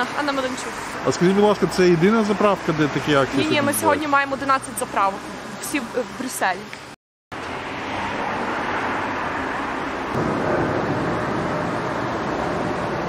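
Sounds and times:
road traffic noise: 0.0s - 13.0s.

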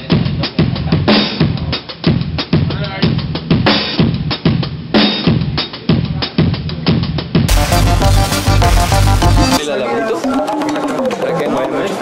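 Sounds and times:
drum kit groove: 0.0s - 9.6s.

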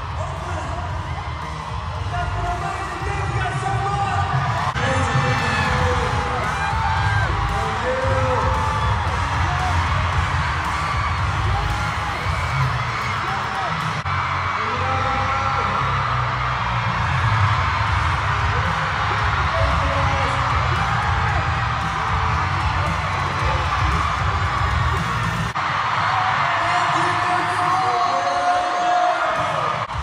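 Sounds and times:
pop music with heavy bass: 0.0s - 14.5s, 15.6s - 25.7s
crowd screaming and cheering: 0.0s - 30.0s.

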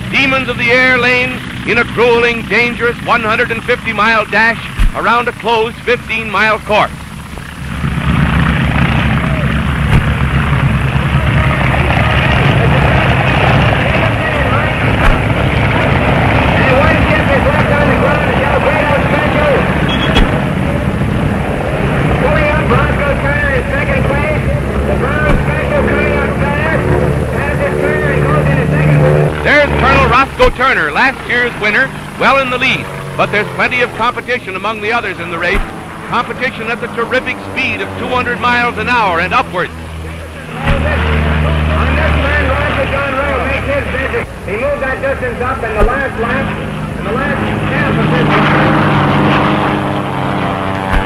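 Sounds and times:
crowd voices: 0.0s - 51.0s
propeller airplane engines droning: 0.0s - 51.0s.

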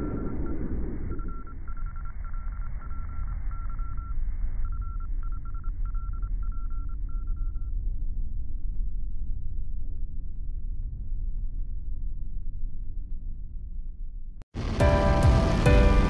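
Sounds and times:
electronic tone beeping: 0.0s - 7.7s
deep steady rumble: 0.0s - 16.0s.

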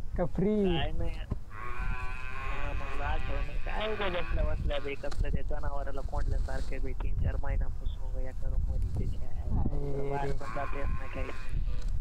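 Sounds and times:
steady buzzing tone: 0.6s - 5.2s.

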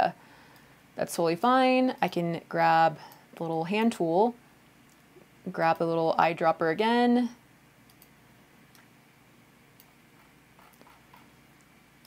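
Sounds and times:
computer mouse clicks: 7.9s - 8.9s, 9.8s - 11.7s.

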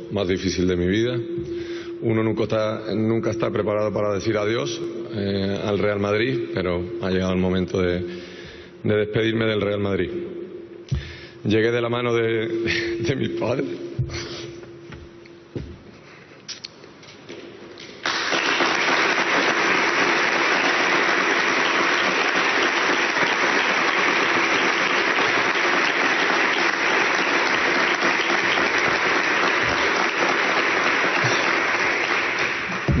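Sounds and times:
audience applauding: 18.0s - 33.0s.

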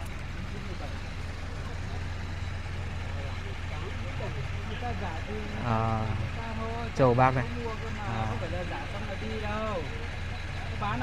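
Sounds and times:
faint voices talking: 0.0s - 11.0s
steady low hum: 0.0s - 11.0s.

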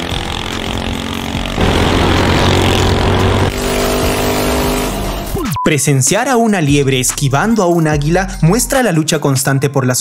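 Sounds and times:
small engine running: 0.0s - 5.3s.

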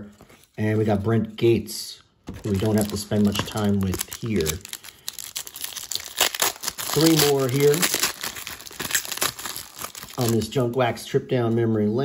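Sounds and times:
foil wrapper tearing: 2.4s - 10.6s.

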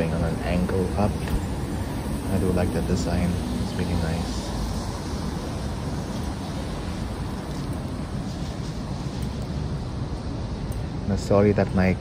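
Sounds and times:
city street ambience: 0.0s - 12.0s.

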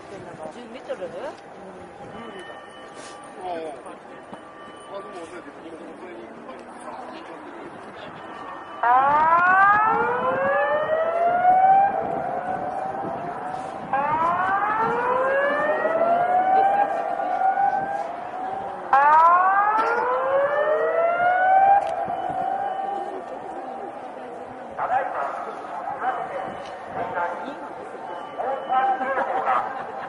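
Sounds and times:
warning siren wailing: 7.6s - 29.8s.

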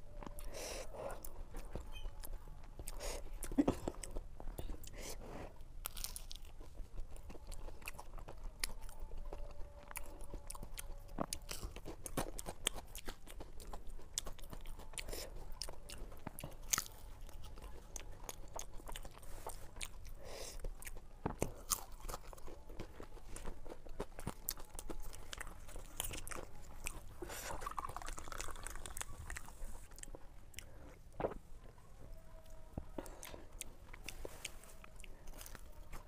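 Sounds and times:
crunching and chewing fried food: 0.0s - 36.0s.

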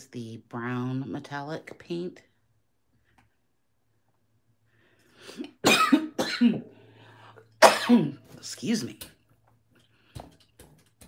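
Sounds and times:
person coughing: 5.3s - 6.8s, 7.6s - 8.2s.

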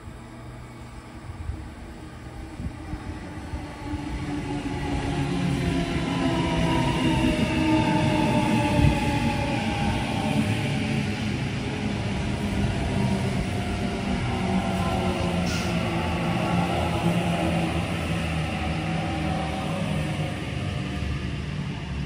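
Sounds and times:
train wheels rumbling on rails: 0.0s - 22.0s.

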